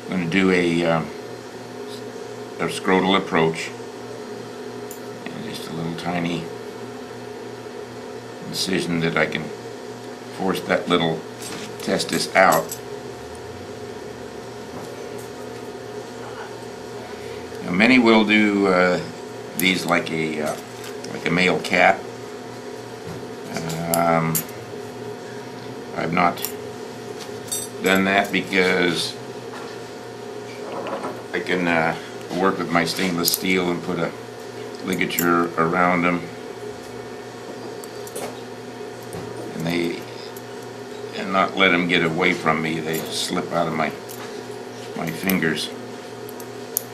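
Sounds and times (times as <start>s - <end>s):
low hum with soft hiss: 0.0s - 46.9s.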